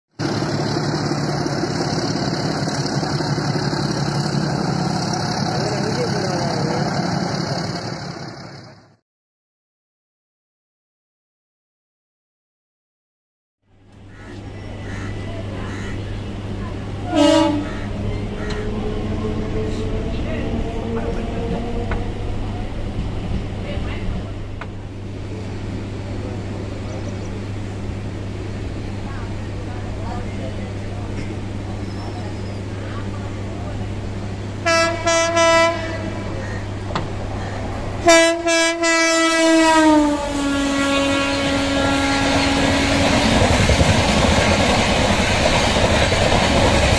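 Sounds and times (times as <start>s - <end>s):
diesel locomotive engine running: 0.1s - 9.0s, 13.7s - 46.9s
train electrical hum: 0.2s - 8.9s, 13.7s - 46.9s
passengers' voices: 5.3s - 7.9s, 14.3s - 35.2s, 35.8s - 38.1s.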